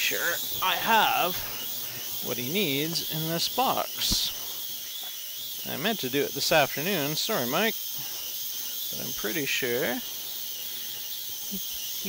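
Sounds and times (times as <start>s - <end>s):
ultrasonic cleaner hissing: 0.0s - 12.0s.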